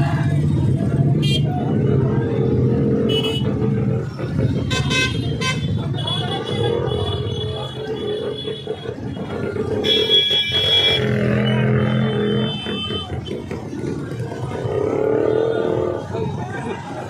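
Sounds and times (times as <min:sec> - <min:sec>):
crowd voices: 0:00.0 - 0:17.0
motorcycle engines running: 0:00.0 - 0:17.0
vehicle horn: 0:03.1 - 0:03.5, 0:09.8 - 0:11.2.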